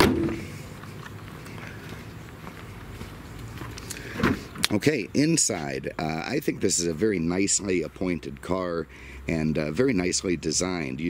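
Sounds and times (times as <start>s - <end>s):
car hood slamming shut: 0.0s - 0.4s
faint footsteps: 0.0s - 4.8s
low steady background noise: 0.0s - 11.0s.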